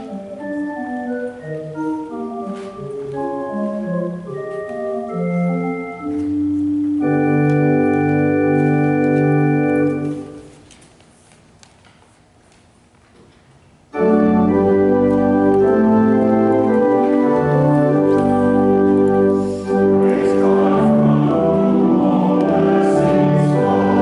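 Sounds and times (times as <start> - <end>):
pipe organ playing: 0.0 - 10.6, 13.9 - 24.0.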